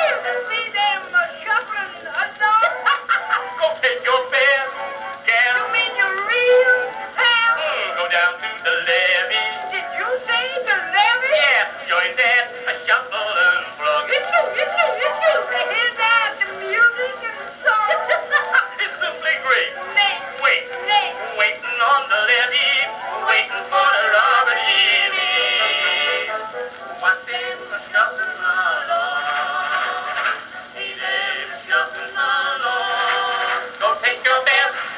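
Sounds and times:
male vocal duet singing: 0.0 - 34.9.

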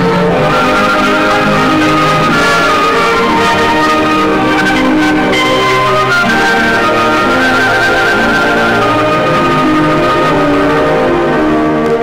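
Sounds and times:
film soundtrack hiss and crackle: 0.0 - 12.0
orchestral title music: 0.0 - 12.0.

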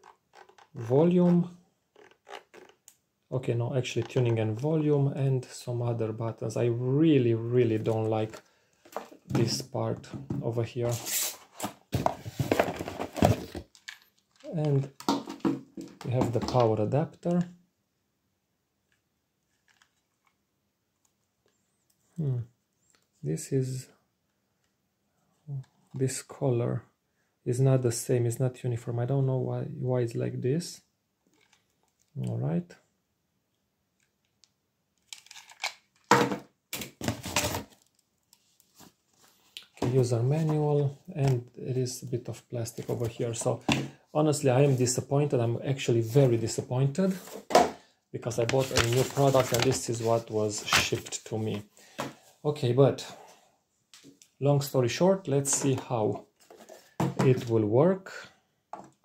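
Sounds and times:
packing rustling: 48.4 - 51.2.

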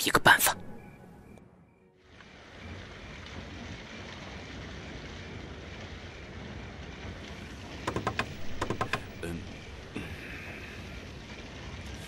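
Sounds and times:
wind-like ambient noise: 0.0 - 12.0
gloved fingers drumming on table: 7.9 - 9.2.

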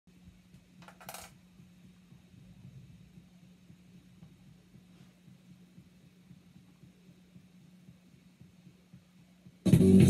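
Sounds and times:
faint low hum: 0.1 - 10.0.

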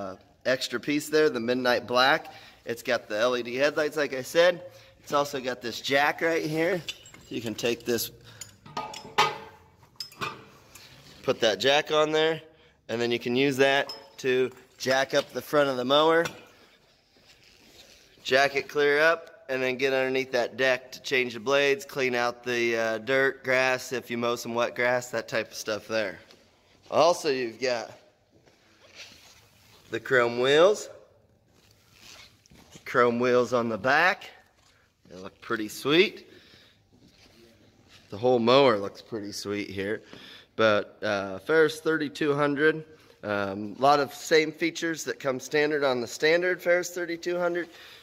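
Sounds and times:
metal jack clanking: 6.7 - 10.9
pin and chain rattling: 6.7 - 10.9
faint rustling handling noise: 14.4 - 19.0, 25.6 - 39.4.

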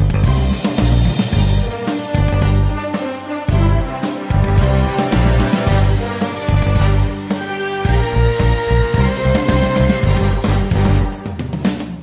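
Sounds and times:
theme music with heavy bass: 0.0 - 12.0.

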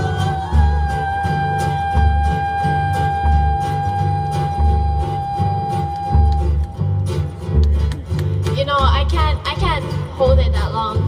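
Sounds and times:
long held high note: 0.0 - 7.0
acoustic guitars ukuleles and bass: 0.0 - 11.0.

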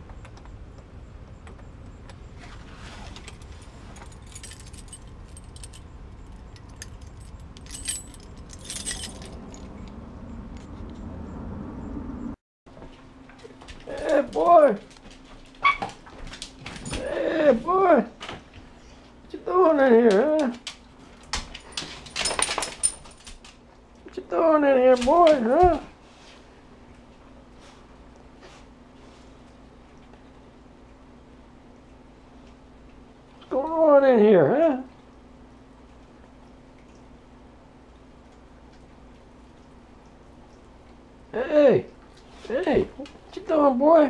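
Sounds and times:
low steady hum: 0.0 - 44.0
small metal pieces jingling: 3.3 - 9.7, 21.7 - 23.4.

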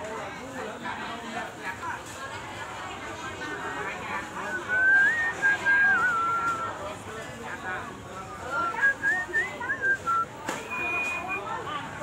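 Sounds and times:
faint voices: 0.0 - 12.0
person whistling sliding notes: 8.6 - 11.4.

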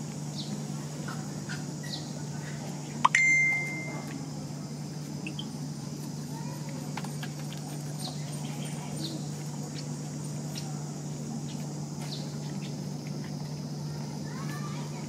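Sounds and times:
steady low hum: 0.0 - 15.0
faint chirps: 1.5 - 4.2
high ringing beep: 3.1 - 4.1.

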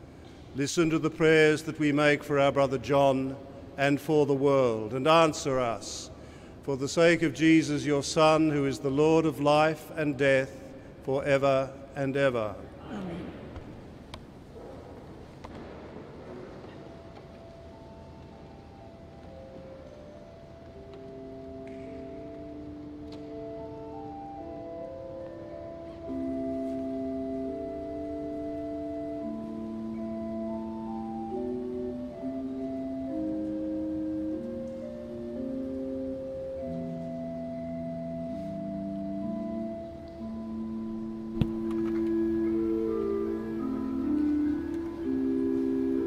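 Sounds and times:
pipe organ held notes: 0.4 - 12.8, 17.1 - 46.0.

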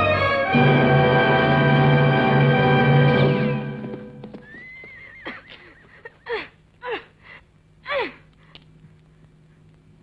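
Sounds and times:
orchestral film score: 0.0 - 4.4
horse whinnying: 4.4 - 6.0.

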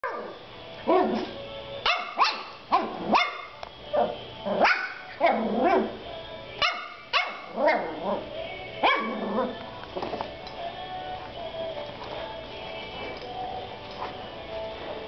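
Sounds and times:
puppy barking high: 0.0 - 3.6, 4.6 - 5.9, 6.6 - 8.0, 8.8 - 9.2.

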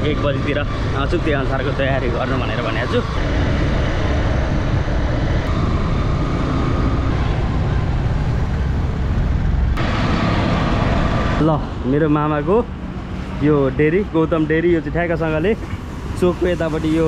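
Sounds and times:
road and traffic noise: 0.0 - 17.0
wind on microphone: 2.8 - 11.4.

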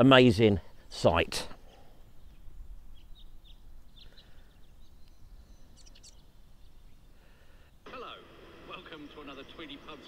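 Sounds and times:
small birds chirping: 0.4 - 7.9, 8.8 - 10.0.

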